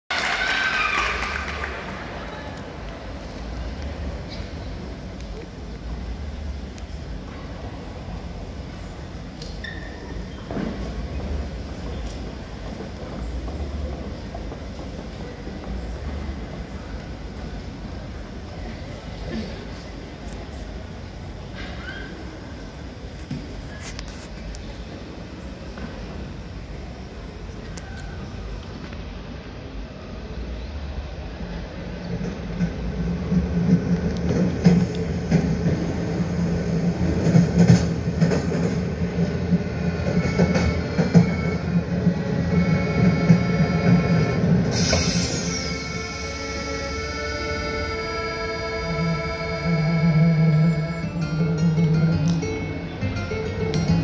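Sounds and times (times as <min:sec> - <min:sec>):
train rumble and rattle: 0:00.4 - 0:54.0.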